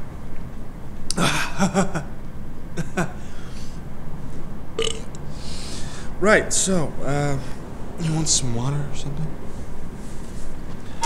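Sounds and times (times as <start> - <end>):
breathy exhale: 3.2 - 3.8, 5.2 - 6.1
man burping: 4.8 - 5.1.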